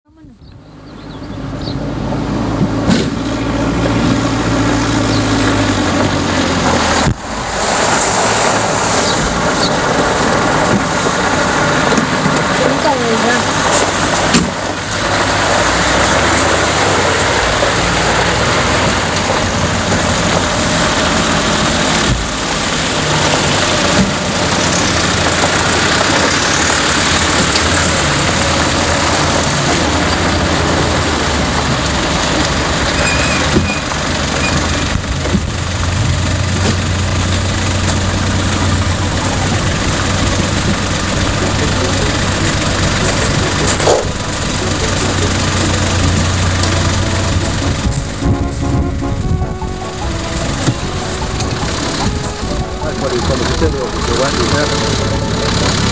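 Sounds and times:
off-road vehicle engines: 0:00.0 - 0:55.9
noisy rush of tyres on gravel: 0:00.9 - 0:44.3.

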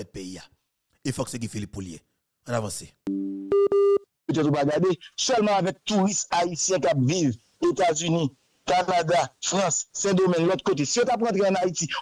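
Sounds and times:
speech: 0:00.0 - 0:03.0, 0:04.3 - 0:12.0
electronic beep with clicks: 0:03.1 - 0:04.0.

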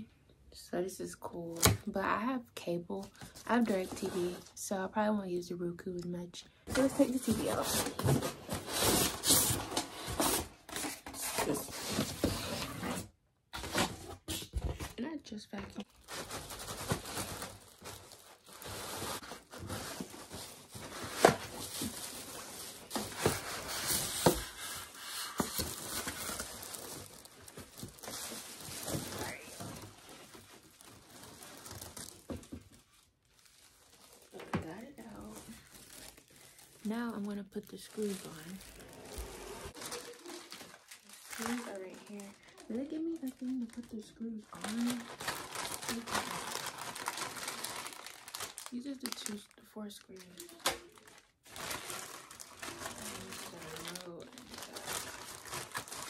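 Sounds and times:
plastic bag crinkling: 0:06.7 - 0:12.9, 0:15.8 - 0:56.0.

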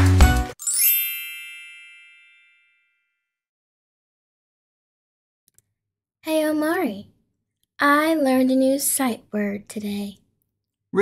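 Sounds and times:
bright chime ringing: 0:00.6 - 0:03.2.

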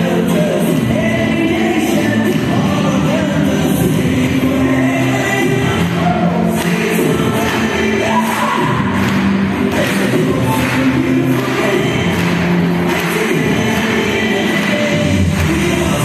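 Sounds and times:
choir singing with accompaniment: 0:00.0 - 0:16.0.

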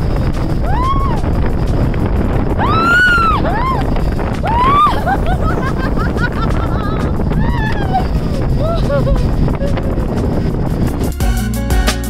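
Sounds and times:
rushing wind: 0:00.0 - 0:12.0
people whooping: 0:00.6 - 0:01.3, 0:02.6 - 0:05.7, 0:07.3 - 0:09.2.

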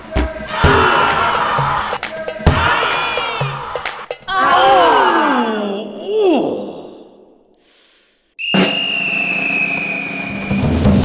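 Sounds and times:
men groaning: 0:00.5 - 0:01.9, 0:02.6 - 0:07.6.

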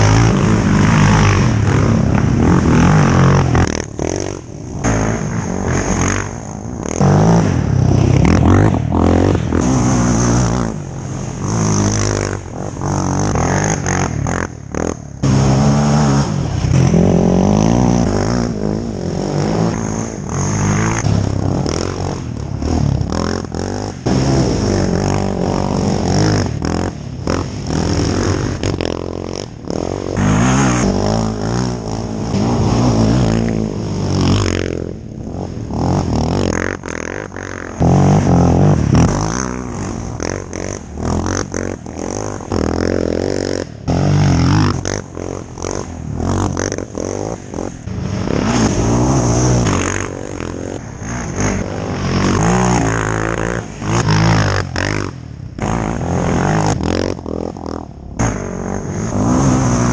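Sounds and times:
quad engines revving: 0:00.0 - 0:59.9.

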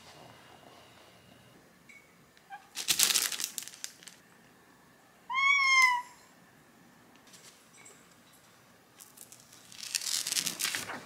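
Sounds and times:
cat meowing: 0:05.3 - 0:06.2
rustling: 0:09.0 - 0:11.0.

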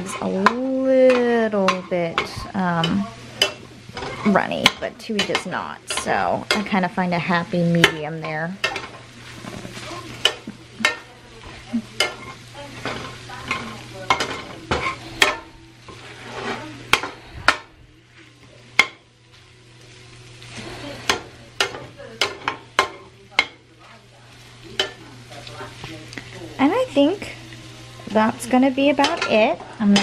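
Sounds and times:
utensil scraping a metal skillet: 0:00.0 - 0:19.0, 0:20.2 - 0:26.4
frying sizzle: 0:00.0 - 0:30.0.

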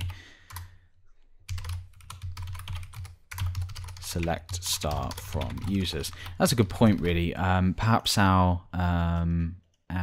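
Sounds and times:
computer keyboard typing: 0:00.0 - 0:00.7, 0:01.5 - 0:07.2.

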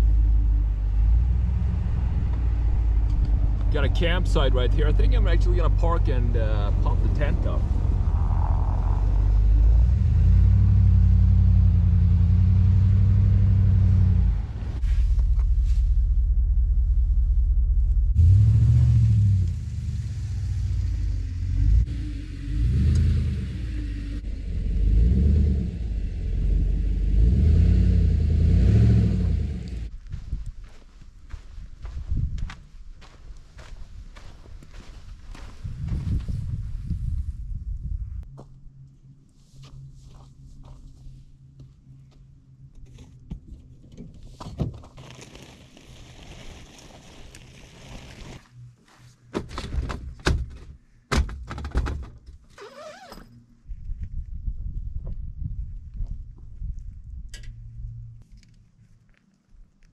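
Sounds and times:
crunching clicks in snow: 0:44.8 - 0:48.5.

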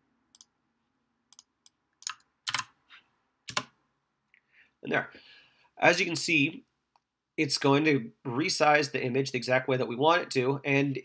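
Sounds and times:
computer keystrokes and clicks: 0:00.3 - 0:00.6, 0:01.3 - 0:02.8, 0:03.5 - 0:03.8.

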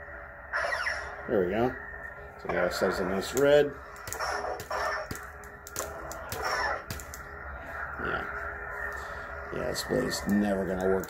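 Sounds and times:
lightsaber hum swinging: 0:02.8 - 0:11.0
sharp clicks: 0:03.3 - 0:07.3.

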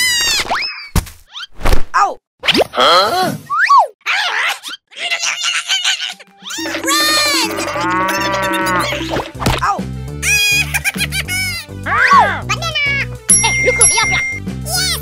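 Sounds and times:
cow moo sound effect: 0:06.6 - 0:09.4.

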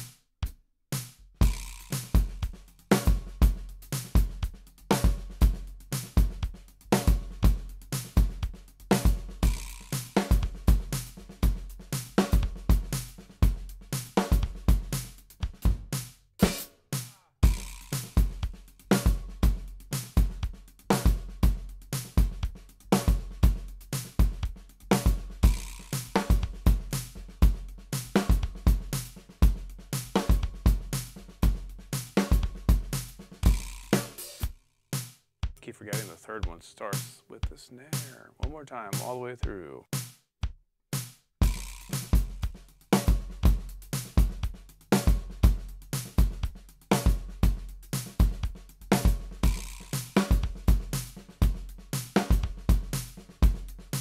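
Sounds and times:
drum kit groove: 0:00.0 - 0:54.0.

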